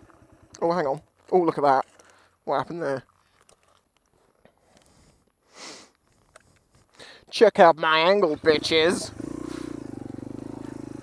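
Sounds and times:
faint clicks and crackles: 0.0s - 7.0s.

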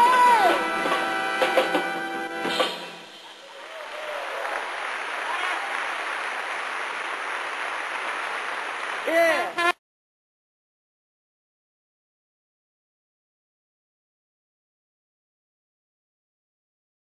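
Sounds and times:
sharp drum hits: 0.8s - 3.2s
audience applause: 3.2s - 9.8s.

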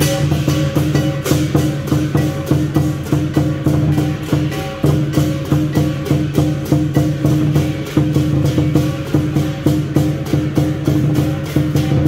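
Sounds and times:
cymbals clashing: 0.0s - 12.0s
gong ringing: 0.0s - 12.0s
large drum beating: 0.0s - 12.0s.

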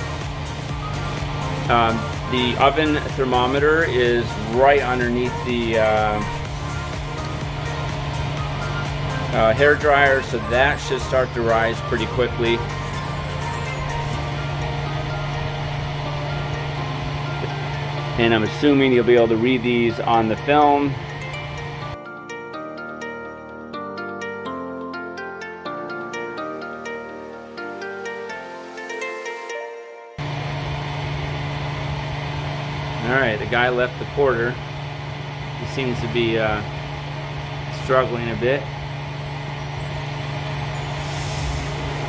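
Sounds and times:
hair dryer whirring: 0.0s - 22.0s, 30.2s - 33.5s.

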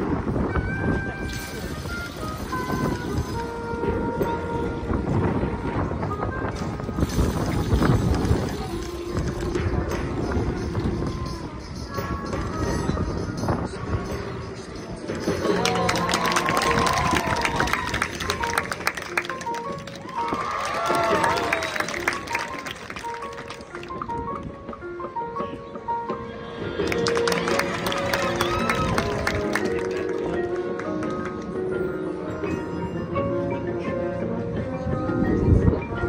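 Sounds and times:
marching band music: 15.2s - 31.2s.

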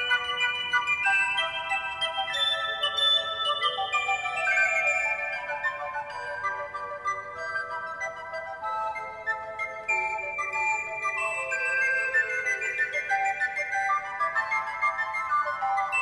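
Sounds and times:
recorders playing together: 0.0s - 16.0s.

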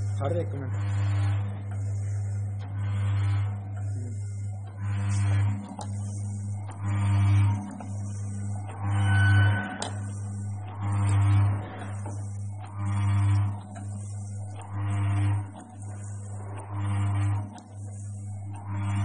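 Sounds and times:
pad printer machine running: 0.0s - 19.0s.

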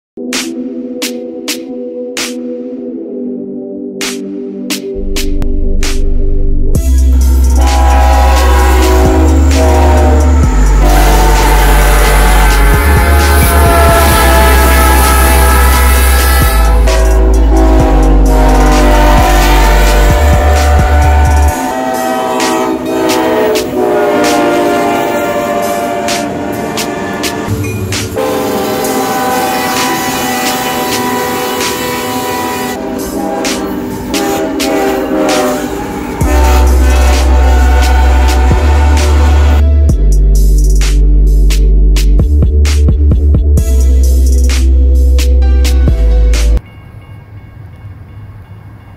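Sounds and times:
music with heavy bass: 3.9s - 24.5s, 27.7s - 46.6s
trains rumbling and clattering: 5.1s - 48.9s
locomotive air horns: 7.1s - 27.5s, 28.1s - 39.6s.

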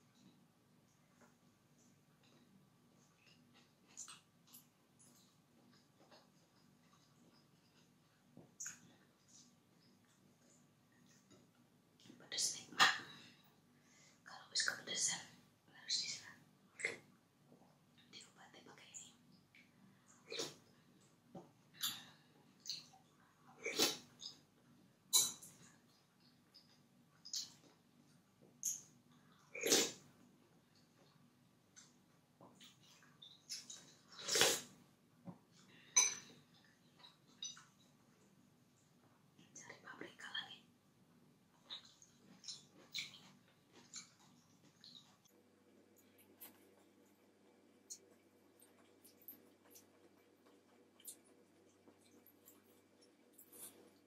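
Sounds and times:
wet mouth eating sounds: 41.5s - 45.4s.

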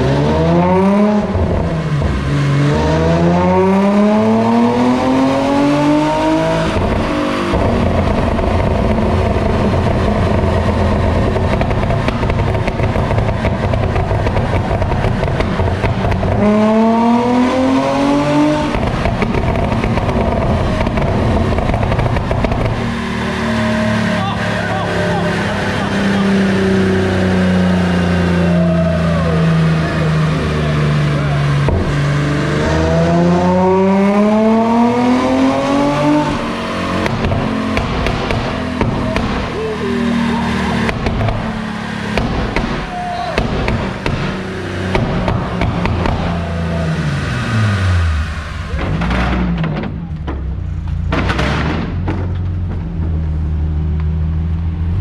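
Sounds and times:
car engine revving on a dyno: 0.0s - 49.6s.

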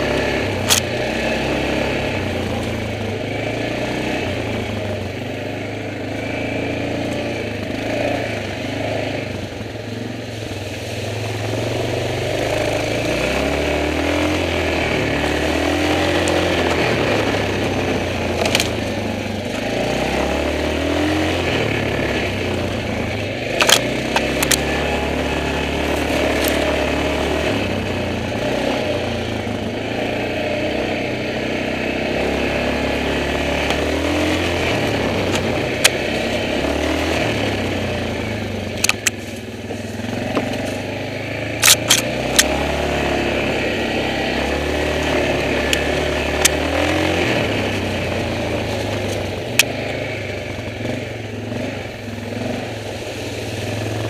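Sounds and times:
quad bike engine revving: 0.0s - 54.0s.

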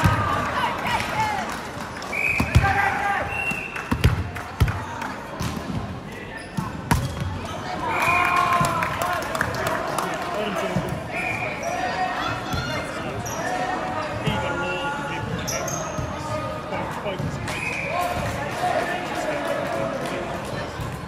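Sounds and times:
players shouting: 7.6s - 15.2s.

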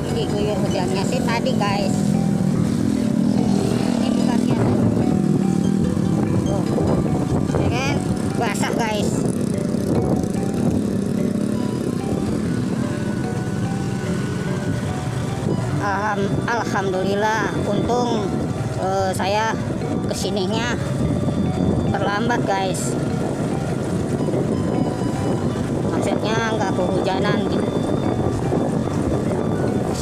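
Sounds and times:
motorcycle engine running: 0.0s - 18.8s
wind noise on microphone: 0.0s - 30.0s.

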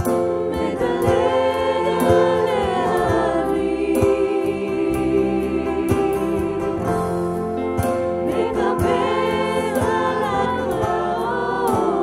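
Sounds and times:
acoustic guitar: 0.0s - 12.0s
bass guitar: 0.0s - 12.0s.

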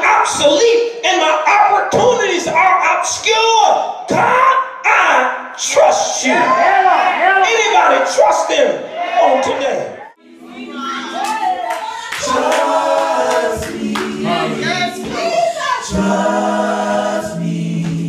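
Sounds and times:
church choir singing: 5.6s - 18.0s.

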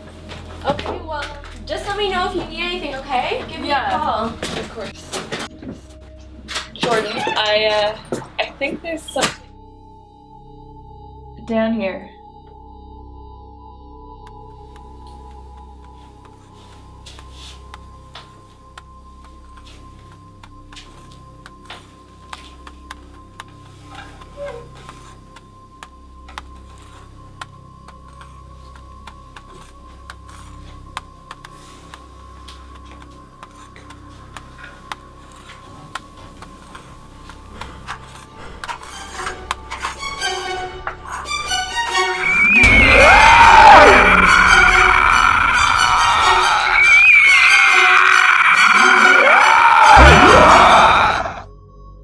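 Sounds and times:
low drone: 12.2s - 52.0s
sustained high tone: 41.5s - 50.2s.

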